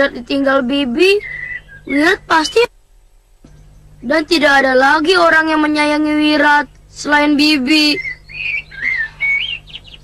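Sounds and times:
bird whistling notes: 1.1s - 2.7s, 7.8s - 10.0s
quick high bird chirps: 8.0s - 10.0s.

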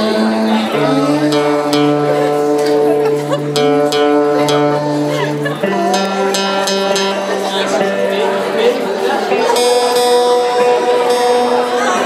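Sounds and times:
crowd voices: 0.0s - 12.0s
electric guitar notes ringing: 0.0s - 12.0s.

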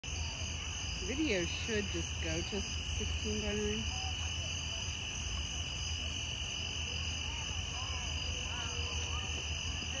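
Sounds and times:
insects trilling: 0.0s - 10.0s.

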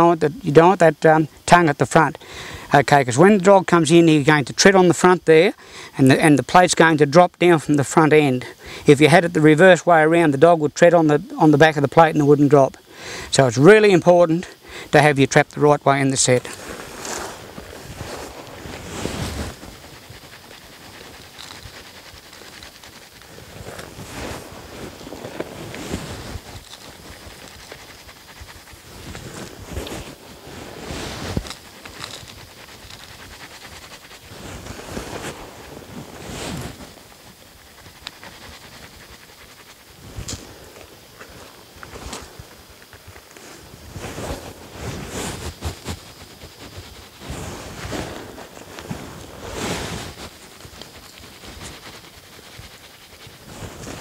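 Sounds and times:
hands rustling dry soil: 11.1s - 54.0s.

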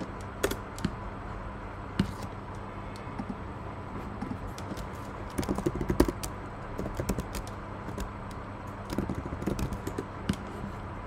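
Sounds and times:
typing on computer keyboard: 4.5s - 10.4s.

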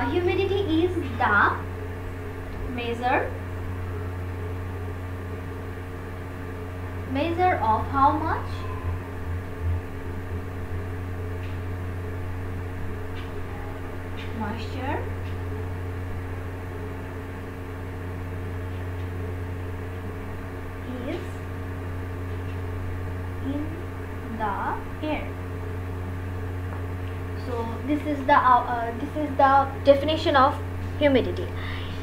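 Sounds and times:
steady low machine hum: 0.0s - 32.0s.

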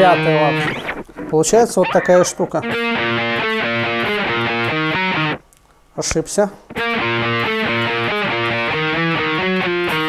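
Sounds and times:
distorted electric guitar riff: 0.0s - 5.4s, 6.7s - 10.0s.

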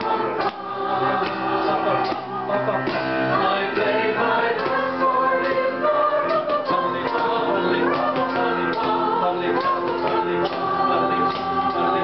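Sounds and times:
electric keyboard: 0.0s - 12.0s
group singing a carol: 0.0s - 12.0s.

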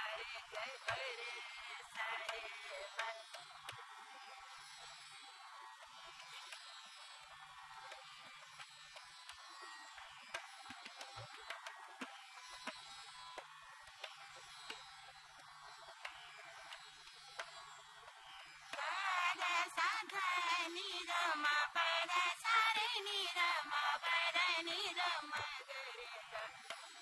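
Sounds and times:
person singing: 0.0s - 3.2s, 18.8s - 26.6s
soft tabla strokes: 0.0s - 27.0s
tanpura drone: 0.0s - 27.0s.

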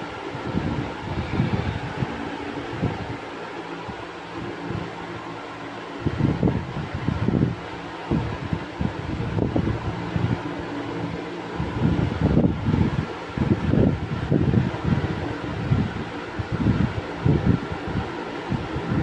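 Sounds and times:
fan-like hum: 0.0s - 19.0s.

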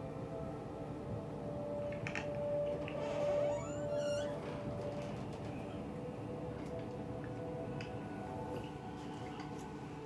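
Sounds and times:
steady high tone: 2.5s - 4.8s
door hinge creaking: 3.1s - 5.6s.

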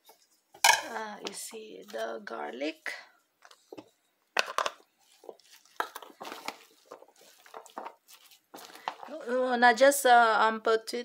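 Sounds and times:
spoon stirring crunchy vegetables: 0.8s - 9.6s.

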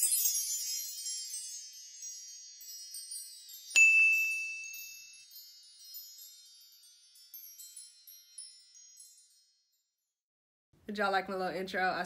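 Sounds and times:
high-pitched twinkling chime: 0.0s - 10.1s.

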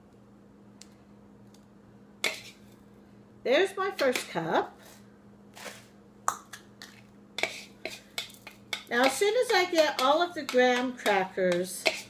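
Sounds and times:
spoon tapping plastic bowl: 8.2s - 12.0s.

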